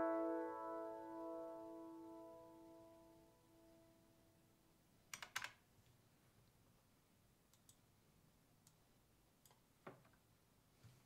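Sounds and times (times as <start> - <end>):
computer mouse and key clicks: 5.1 - 5.6, 7.5 - 7.8.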